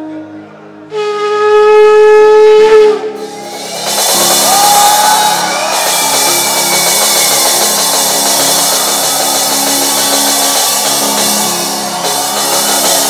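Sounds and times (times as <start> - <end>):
shofar blast: 0.9 - 7.2
congregation cheering and shouting: 3.2 - 13.0.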